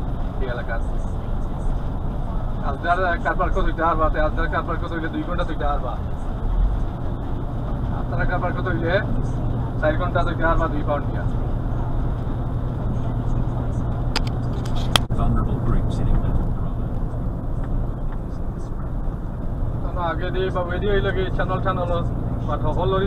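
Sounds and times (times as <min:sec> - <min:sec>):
lorry engine hum: 0:00.0 - 0:23.0
road noise: 0:00.0 - 0:23.0.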